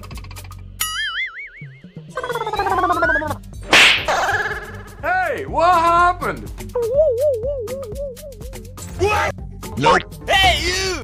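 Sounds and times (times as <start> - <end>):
pitched gliding effect: 2.2 - 3.4
sharp slap: 3.6 - 4.5.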